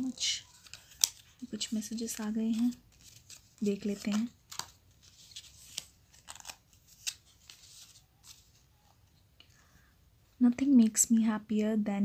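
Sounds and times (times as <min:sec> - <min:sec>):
paper crinkling and rustling: 0:00.0 - 0:09.2.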